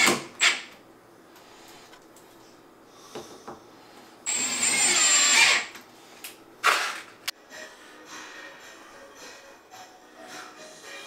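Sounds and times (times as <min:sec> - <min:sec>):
cordless drill driving screw: 0:04.3 - 0:05.7.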